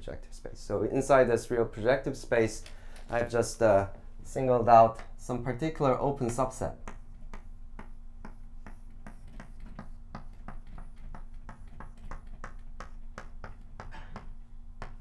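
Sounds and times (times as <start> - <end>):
chalk tapping on blackboard: 6.2 - 15.0.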